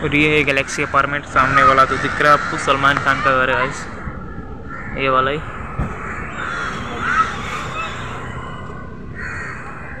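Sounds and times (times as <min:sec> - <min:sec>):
steady background noise: 0:00.0 - 0:10.0
crow cawing: 0:00.6 - 0:10.0.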